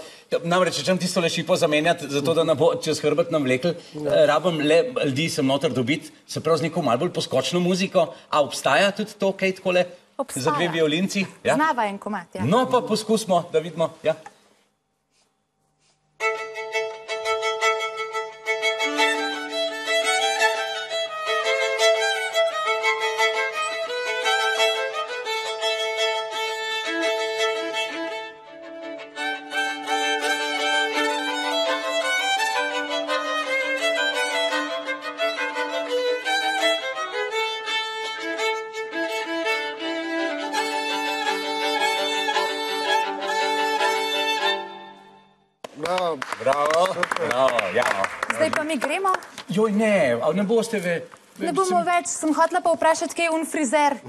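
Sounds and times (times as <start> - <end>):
two violins playing a duet: 16.2 - 45.4.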